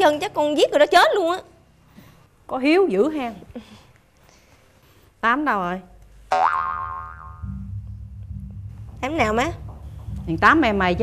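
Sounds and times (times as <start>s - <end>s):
pitched tone: 6.8s - 11.0s
low steady bass notes: 7.0s - 11.0s.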